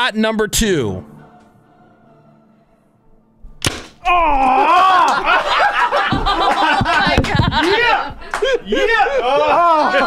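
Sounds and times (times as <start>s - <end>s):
person crying out: 4.0s - 5.4s
person laughing: 4.4s - 10.0s.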